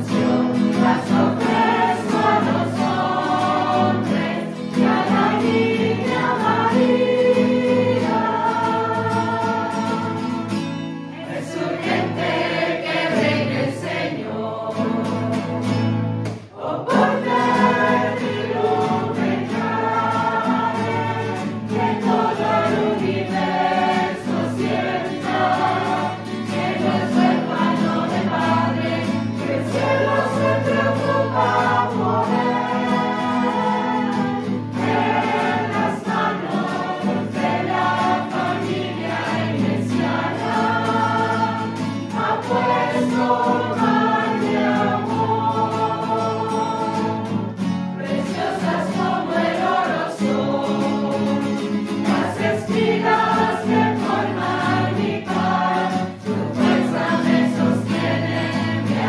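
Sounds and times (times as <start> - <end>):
guitar accompaniment: 0.0 - 59.0
mixed choir singing: 0.0 - 59.0.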